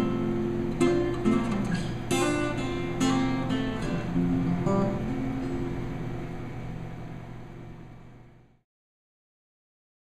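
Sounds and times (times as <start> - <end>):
acoustic guitar notes and chord: 0.0 - 8.5.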